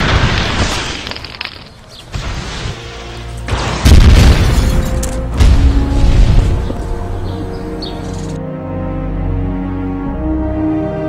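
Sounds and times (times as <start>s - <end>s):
background music: 2.1s - 11.0s
explosion booms: 3.5s - 4.8s, 5.4s - 6.8s.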